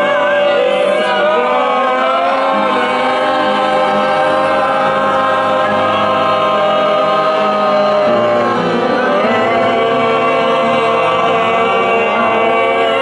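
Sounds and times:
group singing in chorus: 0.0 - 13.0.

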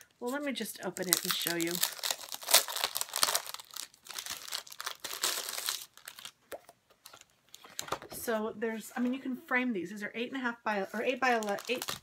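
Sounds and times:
packaging crinkling and rustling: 0.0 - 8.1, 11.0 - 12.0.

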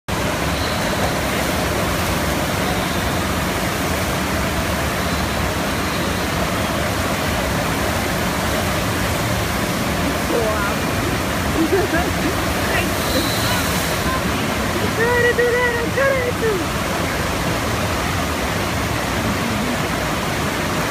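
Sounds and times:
rushing water: 0.1 - 20.9.

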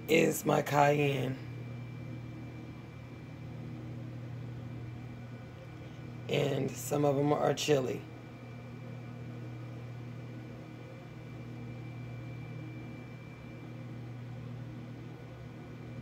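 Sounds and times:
dehydrator fan and motor hum: 0.0 - 16.0
faint high whine: 0.0 - 16.0.

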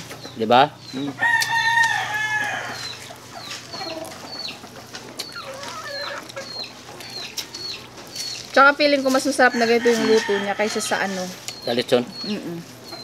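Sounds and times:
small bird chirping: 0.0 - 9.0, 10.8 - 13.0
fowl calls: 0.9 - 7.9
rooster crowing: 1.2 - 3.0, 9.4 - 11.4.

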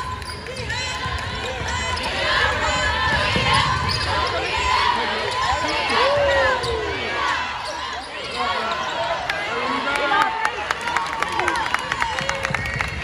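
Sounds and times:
sneakers squeaking: 0.0 - 9.3.

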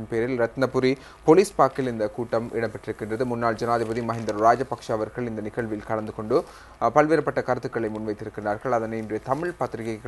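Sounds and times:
man talking: 0.0 - 10.0.

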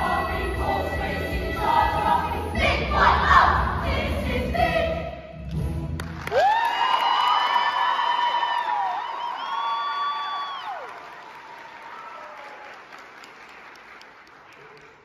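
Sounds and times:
audience applauding and cheering: 5.9 - 15.0
high-pitched whoops: 6.3 - 12.6.

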